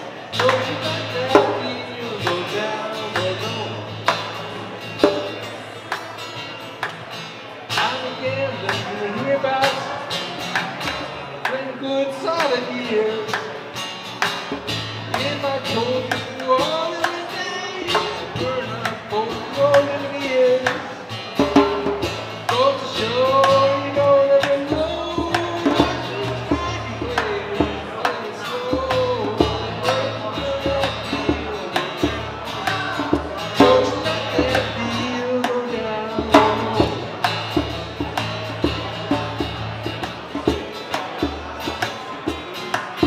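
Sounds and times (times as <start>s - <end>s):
man singing: 0.0s - 5.5s, 7.7s - 13.8s, 15.0s - 43.0s
acoustic guitar strumming: 0.0s - 43.0s
djembe beating steady rhythm: 36.2s - 42.9s.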